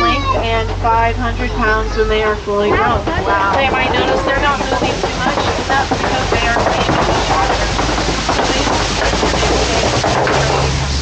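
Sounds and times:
low engine hum: 0.0s - 11.0s
truck ride noise: 0.0s - 11.0s.

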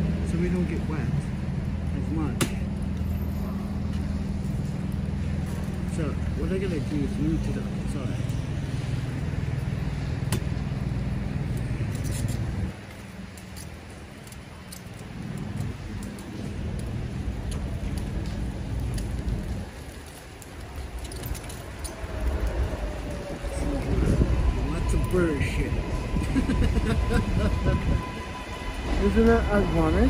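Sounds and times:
street noise: 0.0s - 30.0s.

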